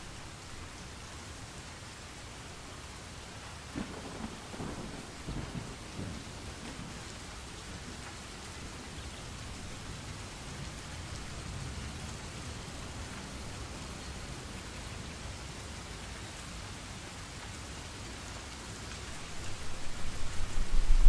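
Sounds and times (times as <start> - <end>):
steady rain: 0.0 - 21.0
thunder rumbling: 3.8 - 7.0, 19.2 - 21.0.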